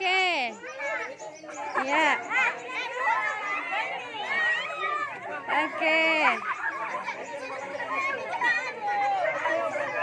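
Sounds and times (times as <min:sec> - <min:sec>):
girls chattering: 0:00.0 - 0:10.0.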